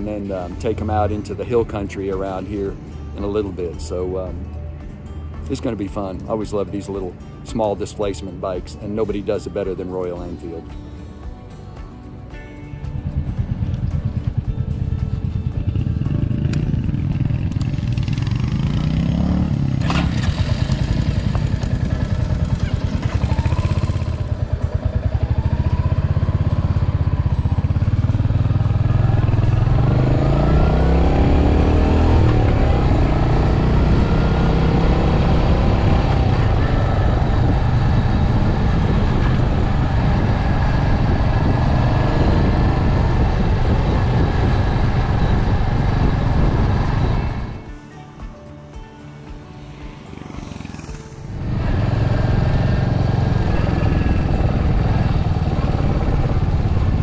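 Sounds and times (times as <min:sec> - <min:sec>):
motorcycle engine revving: 0:12.9 - 0:47.7, 0:49.6 - 0:57.0.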